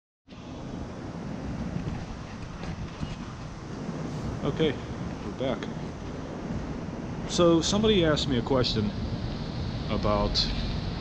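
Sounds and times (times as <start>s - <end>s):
wind buffeting microphone: 0.3s - 11.0s.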